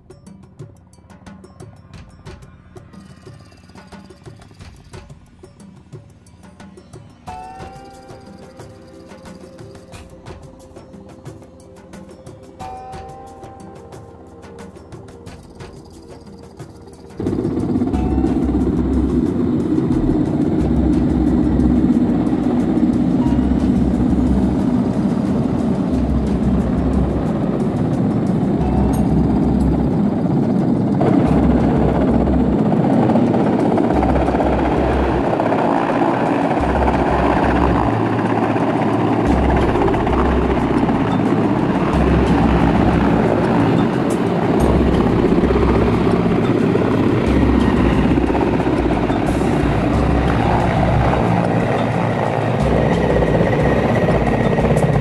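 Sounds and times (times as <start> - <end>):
helicopter rotor and engines: 0.0 - 55.0
downwash buffeting microphone: 17.2 - 55.0.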